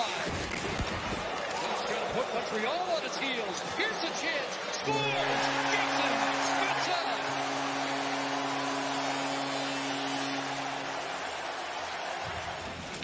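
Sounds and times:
crowd cheering: 0.0s - 13.0s
goal horn low blast: 4.8s - 12.7s.

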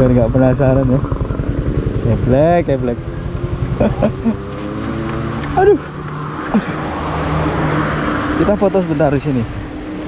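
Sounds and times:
scooter engine humming: 0.0s - 10.0s
wind and road noise: 0.0s - 10.0s.

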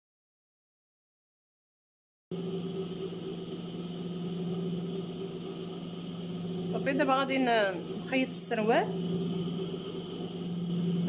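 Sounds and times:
sewing machine motor hum: 2.3s - 11.0s.

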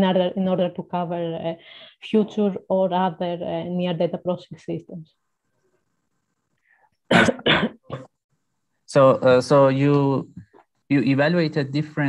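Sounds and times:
person coughing: 7.1s - 8.1s.

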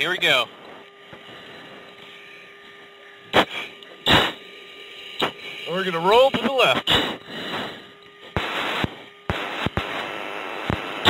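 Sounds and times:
intercom hiss and hum: 0.0s - 11.0s
loud breath into mask microphone: 6.9s - 8.0s.

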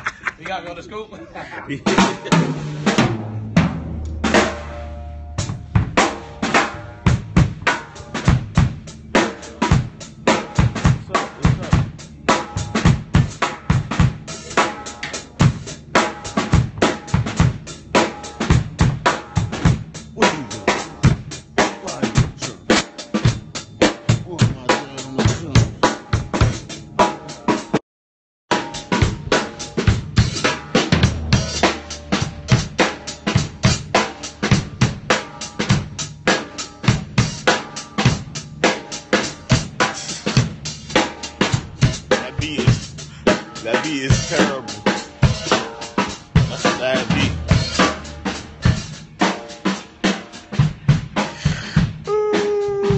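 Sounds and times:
drum kit playing: 1.7s - 27.8s, 28.5s - 52.9s.

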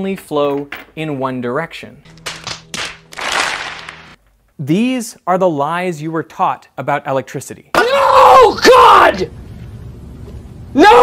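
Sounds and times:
hands slapping: 2.1s - 4.2s
crowd clapping: 2.2s - 4.2s.

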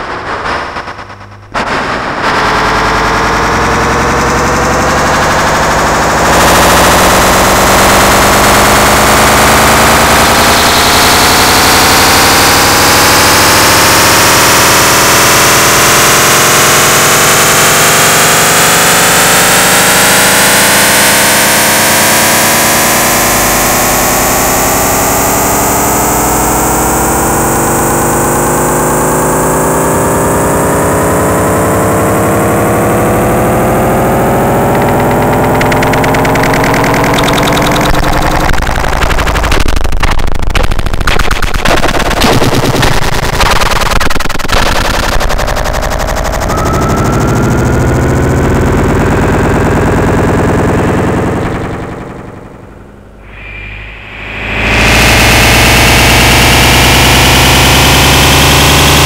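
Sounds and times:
electronic rising pitch glides: 0.0s - 59.0s
electronic stuttering rattle: 0.0s - 59.0s
loud steady electronic noise: 0.0s - 59.0s.

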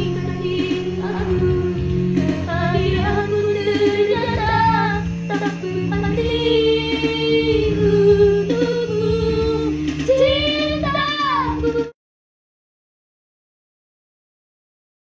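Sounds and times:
low sustained drone: 0.0s - 11.7s
girl singing solo: 2.4s - 12.0s.

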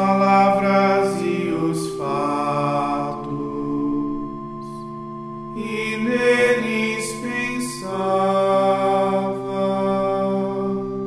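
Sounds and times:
organ sustained chord: 0.0s - 11.0s
sung liturgical chant: 0.0s - 11.0s.

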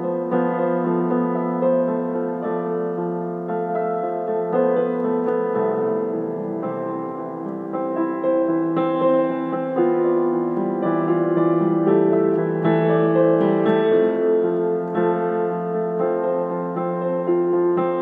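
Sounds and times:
solo piano: 0.0s - 18.0s.

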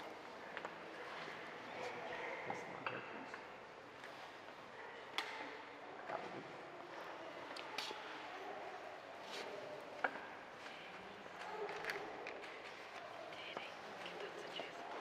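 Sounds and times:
faint murmuring: 10.6s - 15.0s.

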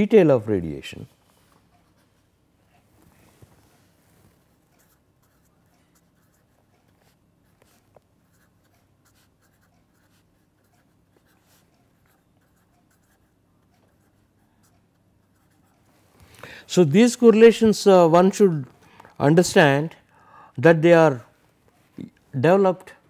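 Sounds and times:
pen scratching on paper: 4.7s - 15.9s.

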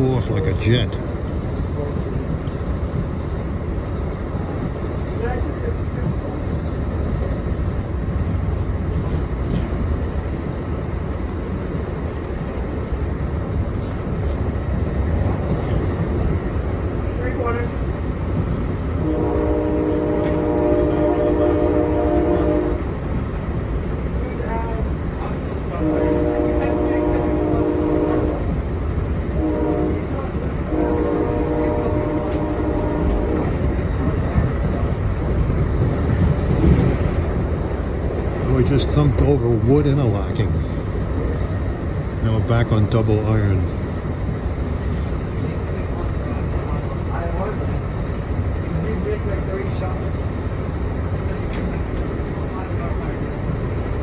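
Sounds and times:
train rumbling at speed: 0.0s - 54.0s
locomotive air horn: 19.0s - 22.9s, 25.7s - 28.5s, 29.3s - 33.6s.

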